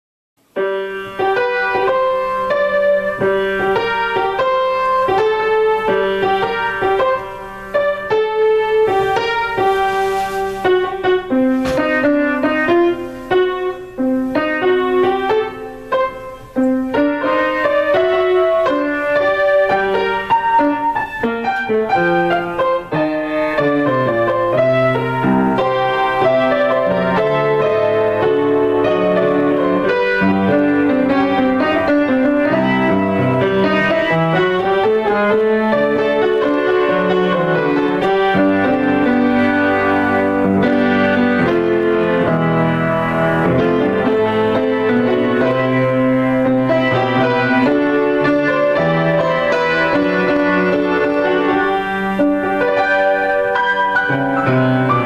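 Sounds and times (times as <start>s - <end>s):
solo piano: 0.4s - 55.0s.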